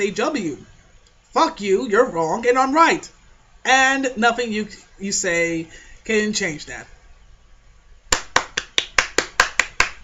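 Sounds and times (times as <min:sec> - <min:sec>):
person clapping hands: 0:08.1 - 0:10.0.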